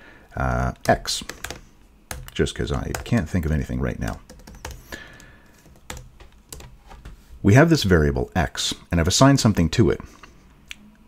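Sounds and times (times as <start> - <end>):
computer keyboard typing: 0.8 - 7.1.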